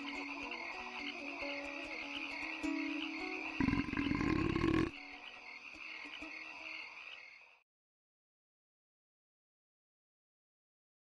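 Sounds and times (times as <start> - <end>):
chirring insects and frogs: 0.0 - 7.6
deep pulsing frog croak: 3.4 - 6.0.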